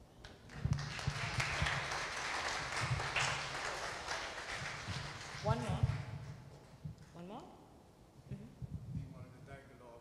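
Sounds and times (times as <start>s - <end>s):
congregation applauding: 0.3s - 6.4s.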